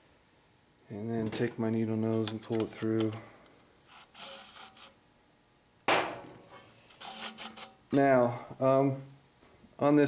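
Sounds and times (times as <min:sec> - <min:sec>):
pull cord rubbing: 0:03.9 - 0:05.0, 0:07.0 - 0:07.8.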